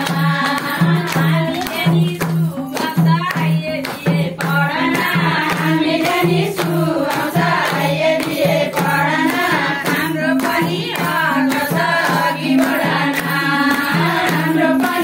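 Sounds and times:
hand drum rhythm: 0.0s - 15.0s
hands clapping: 0.0s - 15.0s
women singing in chorus: 0.0s - 15.0s.

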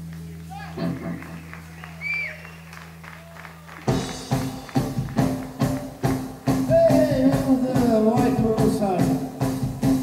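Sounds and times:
rock band playing: 0.0s - 10.0s
drums beating: 2.8s - 10.0s.

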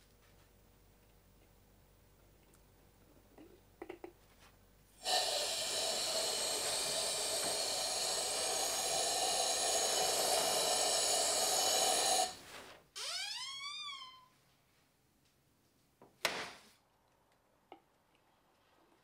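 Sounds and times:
spray gun hissing air: 5.0s - 12.4s.

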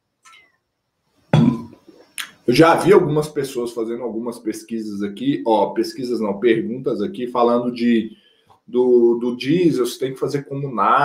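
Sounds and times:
man swallowing water: 1.4s - 2.3s.

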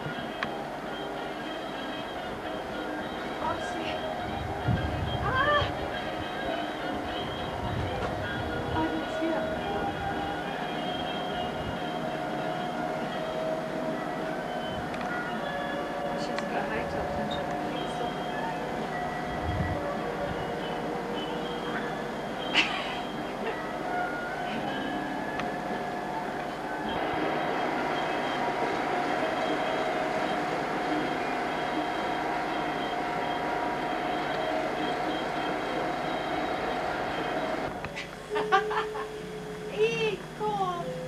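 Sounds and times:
steady mechanical hum: 0.0s - 41.0s.

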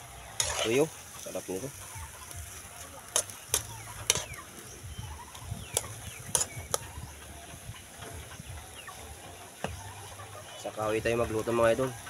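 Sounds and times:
wet mixing of chicken by hand: 0.3s - 1.8s.

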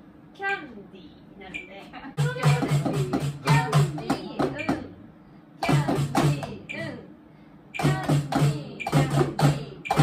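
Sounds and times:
man vocalizing drum rhythm: 2.2s - 4.9s, 5.6s - 7.0s, 7.8s - 10.0s.

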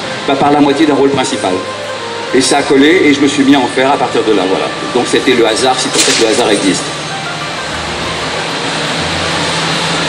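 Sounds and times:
public address hiss: 0.0s - 9.0s.

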